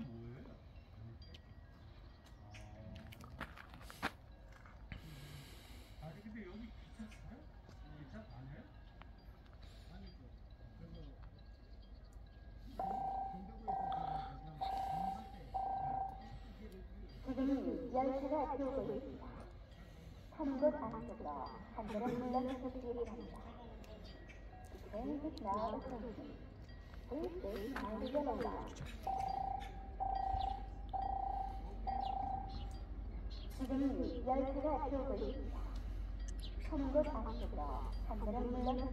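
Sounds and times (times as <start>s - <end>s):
railway warning alarm tone: 5.0s - 38.9s.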